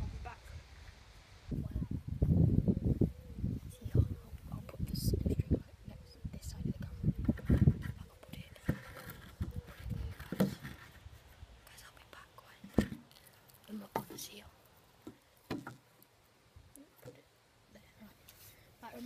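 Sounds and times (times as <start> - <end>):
boy whispering: 3.6 - 7.2, 7.9 - 8.7, 11.7 - 12.8, 17.7 - 19.0.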